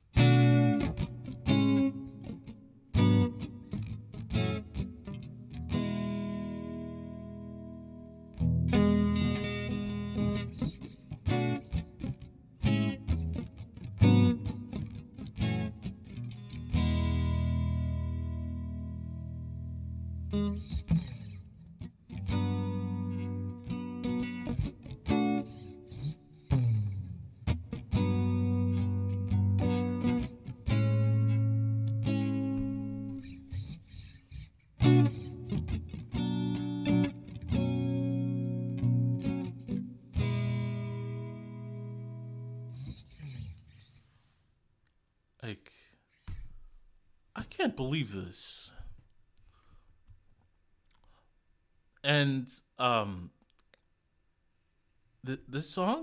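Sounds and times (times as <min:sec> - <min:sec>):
electric blues guitar: 0:00.0 - 0:44.0.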